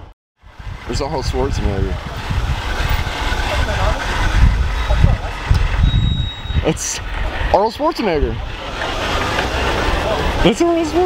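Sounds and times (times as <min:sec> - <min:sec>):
low street rumble: 0:00.0 - 0:11.0
faint voices of passers-by: 0:00.8 - 0:05.9, 0:06.6 - 0:11.0.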